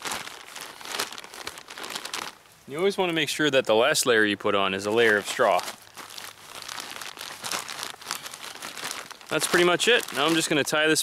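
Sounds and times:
plastic bag crinkling: 0.0s - 2.5s, 4.8s - 11.0s
straw rustling: 0.0s - 3.0s, 4.7s - 11.0s.

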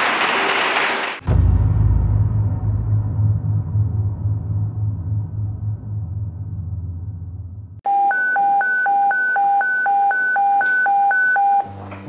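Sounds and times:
two-tone electronic alert beeps: 7.9s - 11.7s.

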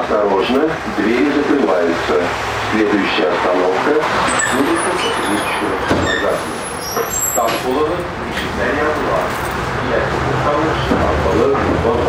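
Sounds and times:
people talking indistinctly: 0.0s - 12.0s
tram rumbling along track: 0.0s - 12.0s
brief high-pitched squeaks: 4.2s - 7.7s.

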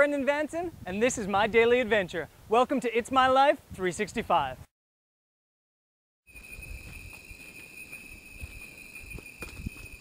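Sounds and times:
high-pitched insect drone: 6.3s - 10.0s
footsteps on forest trail: 6.4s - 10.0s.

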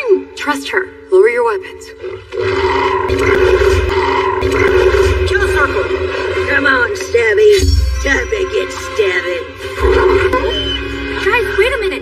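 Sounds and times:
creature growling: 2.0s - 7.0s.

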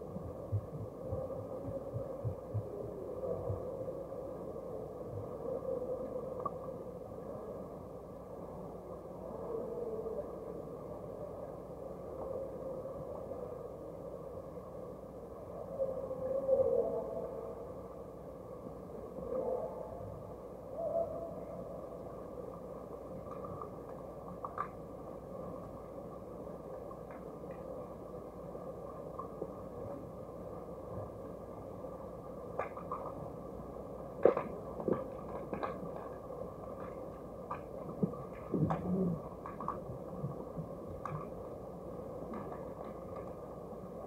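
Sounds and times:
wavering underwater hums: 0.0s - 14.6s, 16.6s - 44.0s
muffled underwater water wash: 0.0s - 16.2s, 17.1s - 44.0s.

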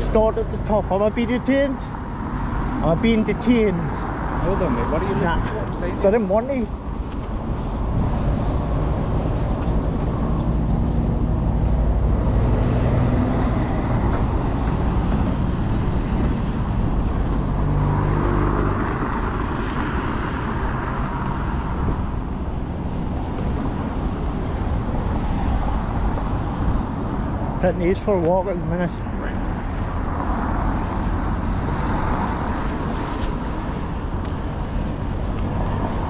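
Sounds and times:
road traffic passing: 0.0s - 36.0s.

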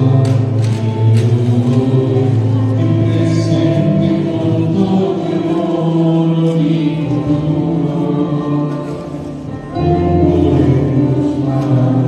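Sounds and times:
church choir singing a hymn: 0.0s - 12.0s.

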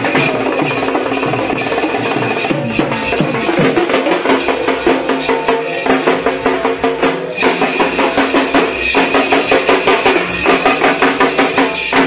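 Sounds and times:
drums beaten with sticks: 0.0s - 12.0s.

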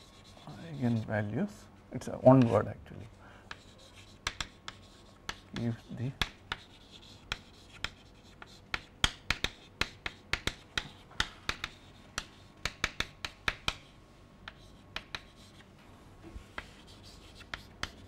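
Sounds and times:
chalk tapping and scraping: 0.0s - 1.1s, 3.5s - 18.0s.

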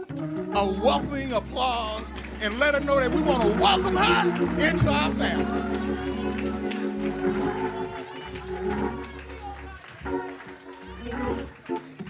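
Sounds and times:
congregation applauding: 0.0s - 12.0s
sustained keyboard chords: 0.0s - 12.0s
scattered voices: 0.6s - 11.7s.

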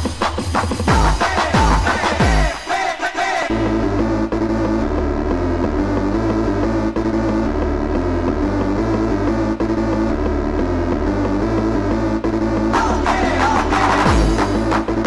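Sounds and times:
hardcore electronic music: 0.0s - 15.0s.

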